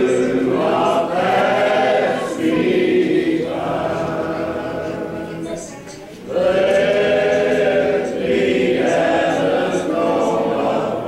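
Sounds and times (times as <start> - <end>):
group singing a hymn: 0.0 - 11.0.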